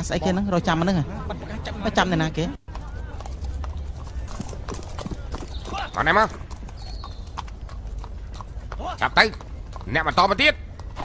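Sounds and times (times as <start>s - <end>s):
horse hooves clip-clopping: 2.6s - 11.0s.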